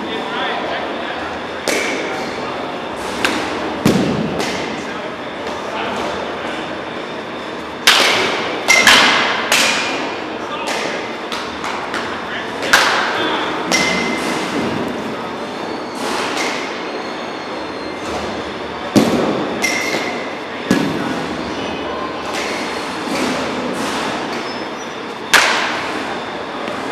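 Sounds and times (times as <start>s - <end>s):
bat hitting baseball: 7.8s - 10.0s, 25.3s - 25.8s.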